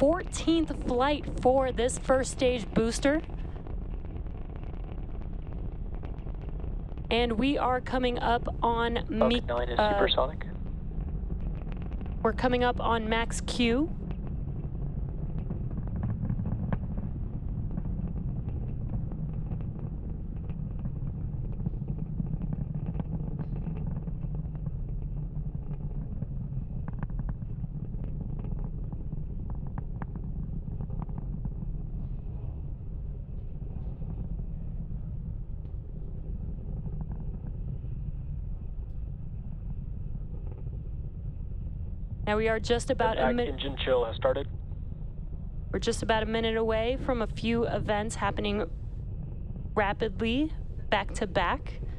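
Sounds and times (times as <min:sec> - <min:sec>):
rocket engines rumbling: 0:00.0 - 0:51.9.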